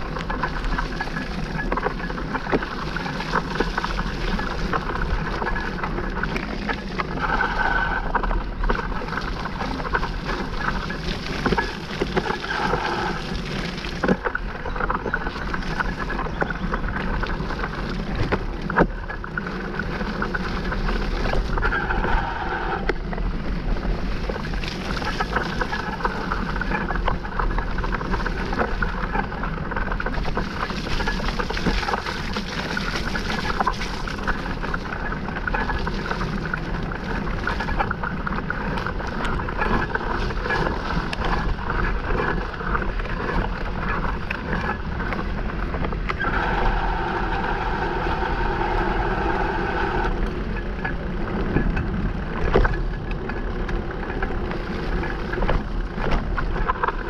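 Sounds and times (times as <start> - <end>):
bike rattling: 0.0 - 57.0
tyres rushing through mud: 0.0 - 57.0
wind on microphone: 0.0 - 57.0.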